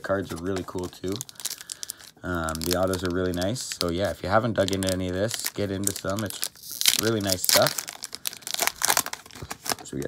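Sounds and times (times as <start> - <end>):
plastic wrapper crinkling: 0.0 - 10.0.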